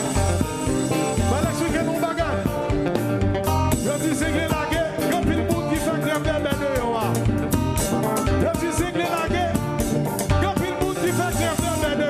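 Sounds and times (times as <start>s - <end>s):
drums and percussion dance beat: 0.0s - 12.0s
electric guitar: 0.0s - 12.0s
man singing lead vocal: 1.0s - 3.0s, 3.7s - 7.5s, 8.2s - 12.0s.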